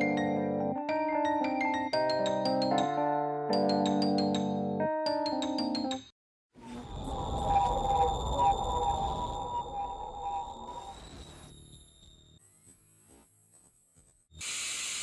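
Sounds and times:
high ringing tones: 0:06.6 - 0:12.4.

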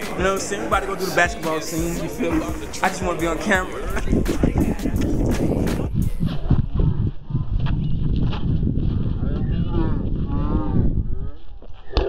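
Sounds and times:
wind rumble on microphone: 0:03.8 - 0:12.0.

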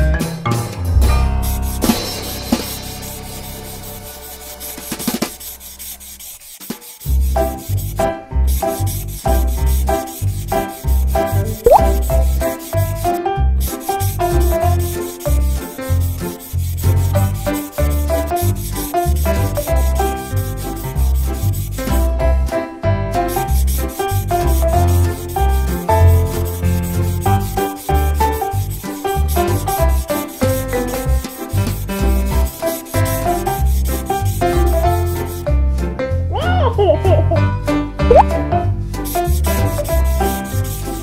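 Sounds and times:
marker rubbing on paper: 0:02.5 - 0:22.0, 0:23.3 - 0:35.4, 0:39.0 - 0:41.0
marker squeaks: 0:05.0 - 0:07.0, 0:11.6 - 0:12.4, 0:39.0 - 0:41.0.

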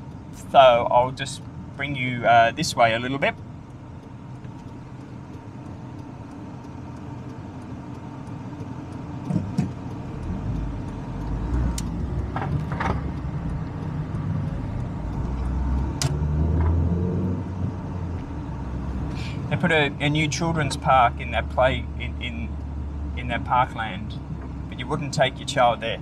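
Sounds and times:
car engine and tyre rumble: 0:00.0 - 0:26.0.

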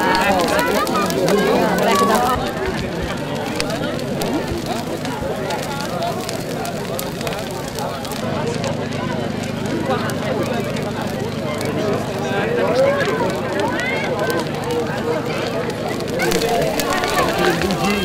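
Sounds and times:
bonfire crackling and popping: 0:00.0 - 0:18.0
crowd chatter: 0:00.0 - 0:18.0.

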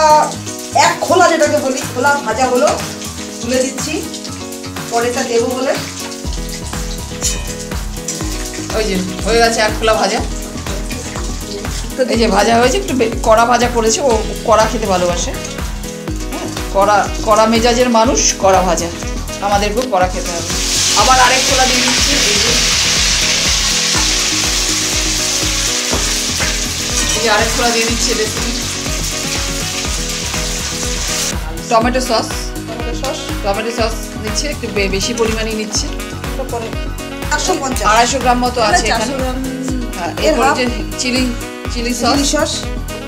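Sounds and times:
background music: 0:00.0 - 0:43.0
food sizzling in wok: 0:00.0 - 0:43.0
spatula stirring: 0:20.6 - 0:31.4.

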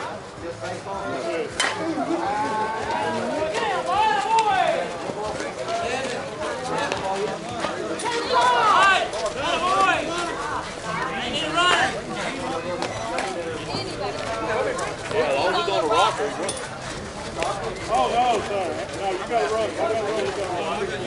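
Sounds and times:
people calling and shouting: 0:00.0 - 0:21.0.

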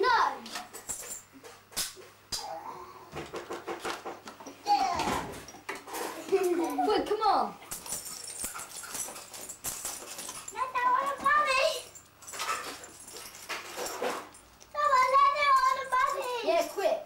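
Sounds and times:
coins and paper rustling: 0:07.7 - 0:17.0.

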